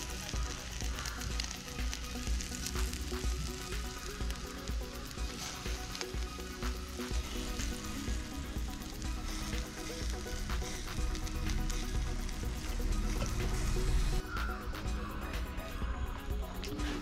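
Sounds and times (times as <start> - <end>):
background music: 0.0 - 17.0
chicken sizzling over charcoal: 0.0 - 17.0
drips crackling on coals: 0.0 - 17.0.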